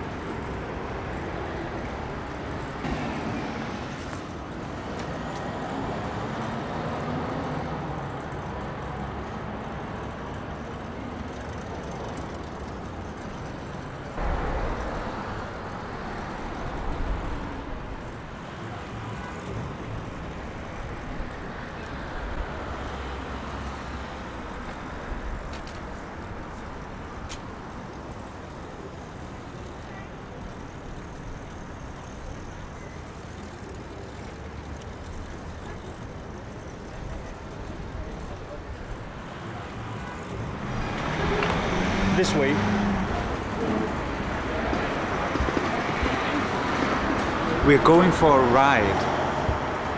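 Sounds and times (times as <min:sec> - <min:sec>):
road traffic noise: 0:00.0 - 0:49.9.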